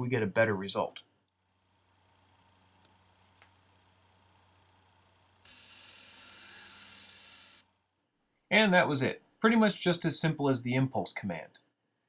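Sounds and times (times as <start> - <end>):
small electric motors whirring: 2.0 - 7.7.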